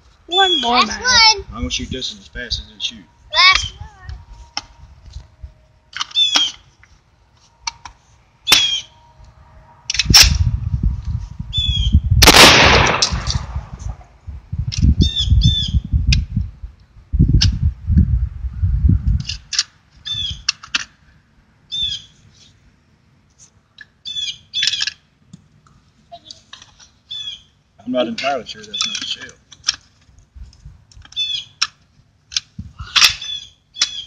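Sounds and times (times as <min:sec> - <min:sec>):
birds chirping: 0:00.3 - 0:01.3, 0:06.0 - 0:06.8, 0:08.4 - 0:09.2, 0:21.7 - 0:22.2, 0:24.0 - 0:25.0, 0:26.2 - 0:29.5, 0:31.1 - 0:31.7, 0:33.1 - 0:34.0
shotgun shots: 0:12.2 - 0:13.6.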